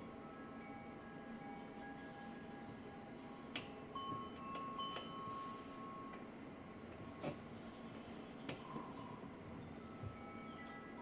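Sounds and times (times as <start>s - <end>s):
sustained chime-like tones: 0.0s - 6.4s, 8.9s - 11.0s.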